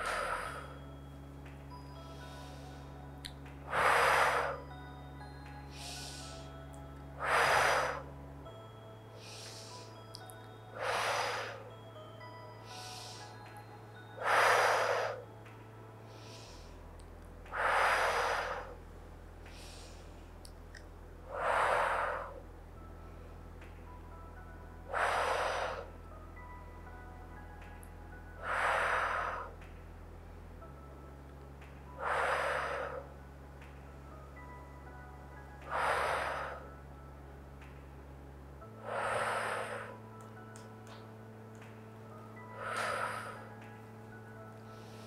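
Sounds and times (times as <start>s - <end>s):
woman breathing in: 0.0s - 0.9s, 1.7s - 4.8s, 5.7s - 6.6s, 7.2s - 15.4s, 16.0s - 16.9s, 17.5s - 18.8s, 21.2s - 22.4s, 24.8s - 26.5s, 28.3s - 29.6s, 31.9s - 33.2s, 34.8s - 36.8s, 38.7s - 40.2s, 42.4s - 43.7s, 44.7s - 45.0s
soft background music: 0.0s - 45.0s
woman breathing out through lips: 7.2s - 8.1s, 42.6s - 43.5s.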